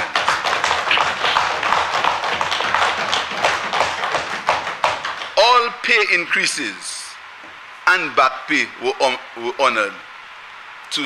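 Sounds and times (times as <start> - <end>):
desk-thumping applause: 0.0 - 6.1.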